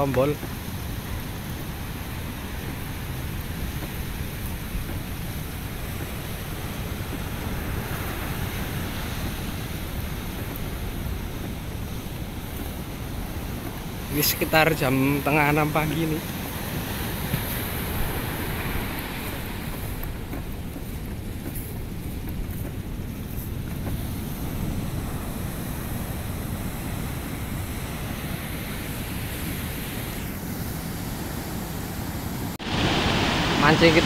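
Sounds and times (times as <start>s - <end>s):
wind buffeting microphone: 0.0s - 30.9s
ocean surf breaking: 0.0s - 34.0s.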